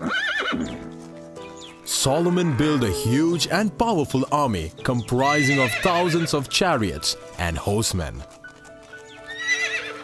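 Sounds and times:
horse whinnying: 0.0 - 0.9, 5.2 - 6.4, 9.2 - 10.0
background music with held notes: 0.0 - 10.0.

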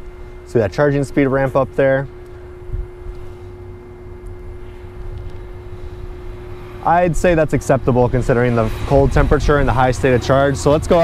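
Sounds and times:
charging station hum: 0.0 - 11.0
low rumble: 4.5 - 11.0.

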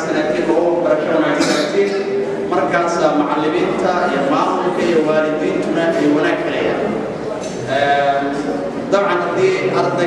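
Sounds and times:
man speaking: 0.0 - 7.0, 7.6 - 10.0.

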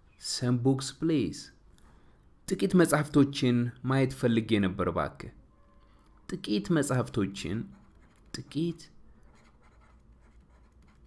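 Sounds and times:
pen scratching while writing: 7.7 - 8.4, 9.2 - 11.0.

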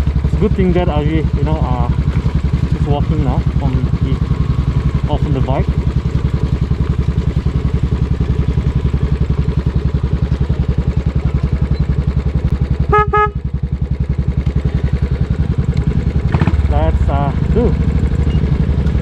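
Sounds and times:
motorcycle engine running: 0.0 - 19.0
motorcycle horn beeps: 12.8 - 13.6.

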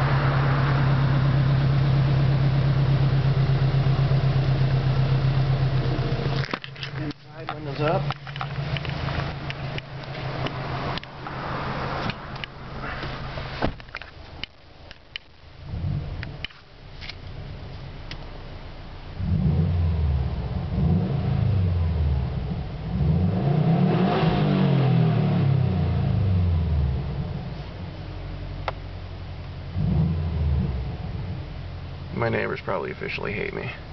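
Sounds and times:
car engine idling and revving: 0.0 - 33.9.

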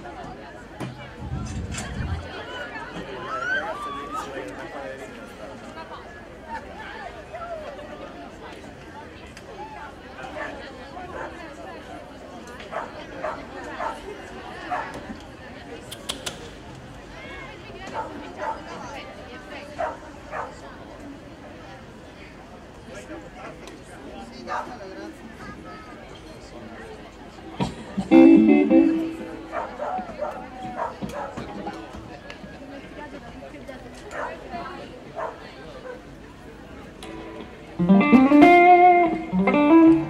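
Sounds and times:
indistinct chatter of voices: 0.0 - 40.0
short louder sounds: 1.1 - 2.7
voices talking: 27.6 - 32.0.

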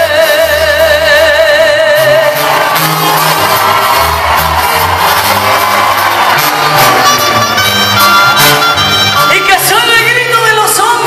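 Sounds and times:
crowd shouting and cheering: 0.0 - 11.0
live band playing ballad: 0.0 - 11.0.

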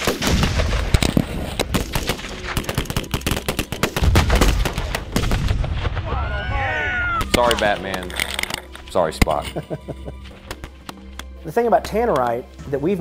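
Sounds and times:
deep explosive blast: 0.0 - 2.6, 3.9 - 7.4
rapid overlapping gunfire: 0.0 - 5.7.

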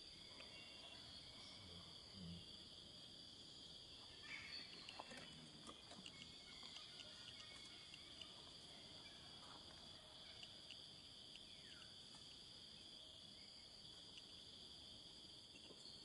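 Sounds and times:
high-pitched insect chorus: 0.0 - 16.0.

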